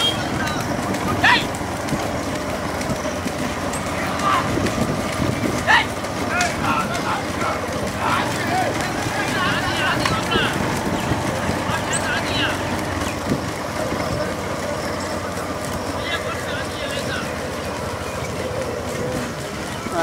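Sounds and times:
men shouting: 0:00.0 - 0:02.0, 0:03.8 - 0:20.0
motorcycle engines running: 0:00.0 - 0:20.0.

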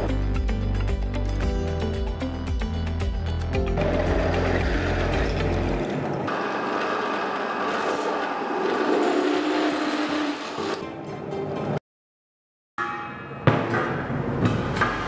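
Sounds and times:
background music: 0:00.0 - 0:06.3
drill press cutting steel: 0:06.3 - 0:10.8.

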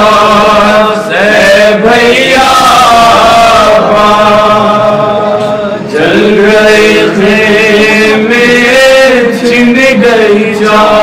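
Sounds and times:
men chanting a lament: 0:00.0 - 0:11.0.

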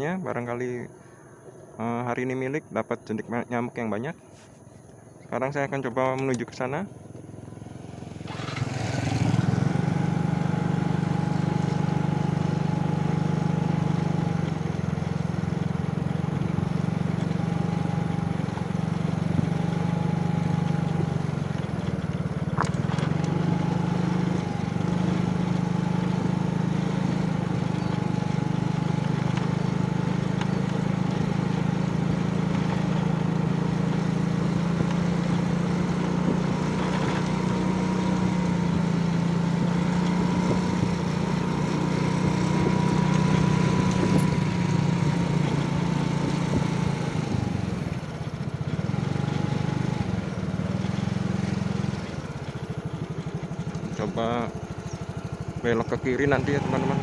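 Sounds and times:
small motorcycle engine running: 0:06.8 - 0:57.0.

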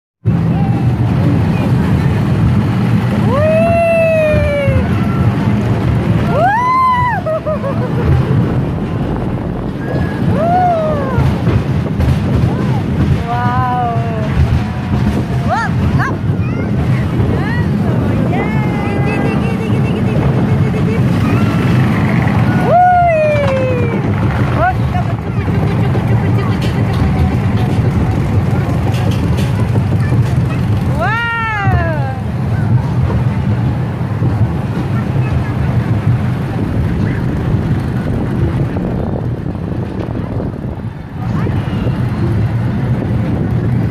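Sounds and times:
roller coaster rumbling on track: 0:00.2 - 0:43.9
wind buffeting microphone: 0:00.2 - 0:43.9.

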